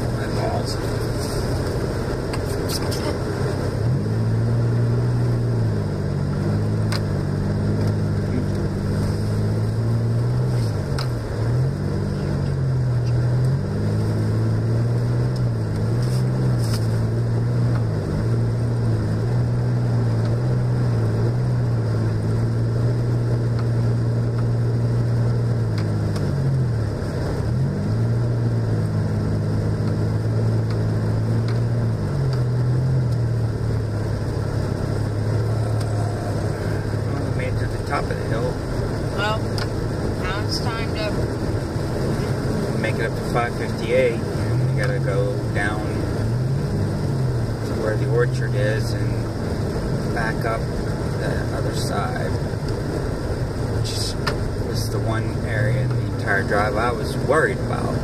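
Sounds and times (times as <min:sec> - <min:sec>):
car engine drone: 0:00.0 - 0:58.0.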